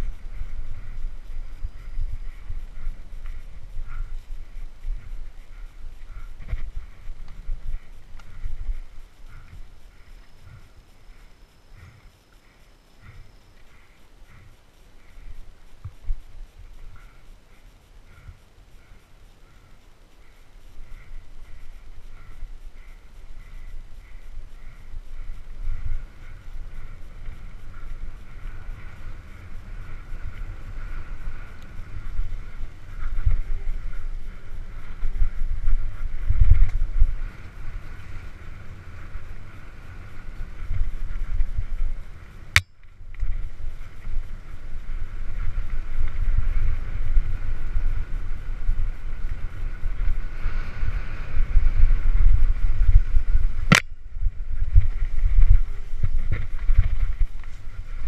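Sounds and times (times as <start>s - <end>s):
faint steady hiss: 0.0s - 58.0s
wind rumbling on microphone: 0.0s - 58.0s.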